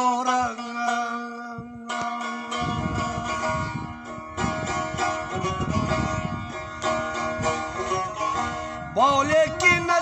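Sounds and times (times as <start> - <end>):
plucked lute: 0.0 - 10.0.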